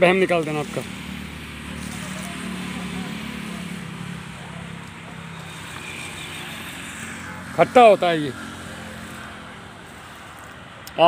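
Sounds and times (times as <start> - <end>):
steady background noise: 0.0 - 11.0
vehicle engine humming: 0.0 - 11.0.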